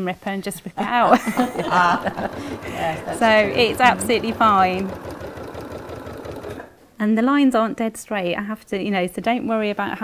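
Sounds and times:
sewing machine stitching: 0:01.6 - 0:06.8.

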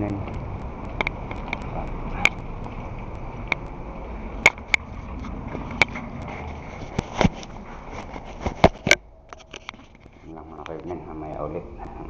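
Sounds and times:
sharp clicks and knocks: 0:00.0 - 0:03.8, 0:04.4 - 0:11.0.

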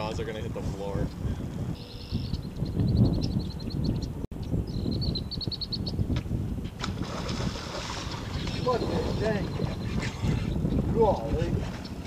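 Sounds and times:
wind rumbling on microphone: 0:00.0 - 0:12.0
small bird trilling: 0:01.8 - 0:06.0.

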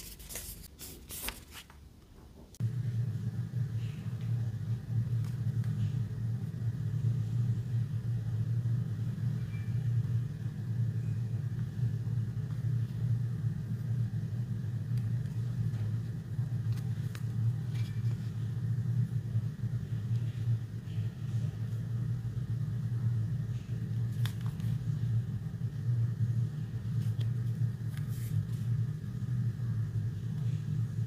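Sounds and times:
steady low rumble: 0:02.6 - 0:31.0.

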